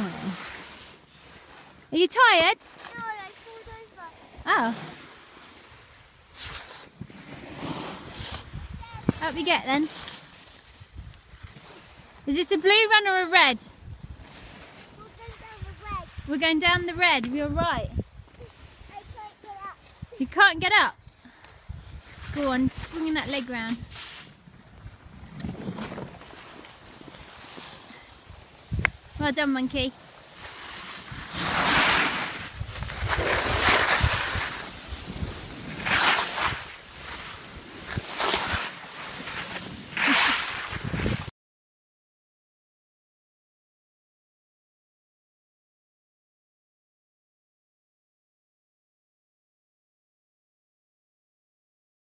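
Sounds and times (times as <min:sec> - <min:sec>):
skis scraping over packed snow: 0:00.0 - 0:41.3
wind rumble on microphone: 0:08.3 - 0:09.2, 0:10.8 - 0:11.4, 0:15.2 - 0:18.9, 0:21.6 - 0:23.0, 0:28.3 - 0:29.2, 0:32.4 - 0:35.8, 0:40.7 - 0:41.3.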